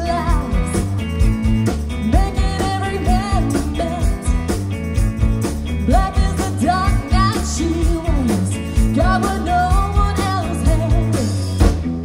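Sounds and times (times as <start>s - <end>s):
bass guitar: 0.0s - 12.0s.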